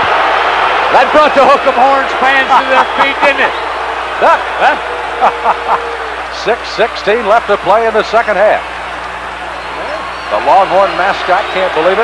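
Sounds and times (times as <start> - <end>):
tv broadcast: 0.9 - 12.0
man laughing: 2.3 - 3.4, 4.6 - 5.9.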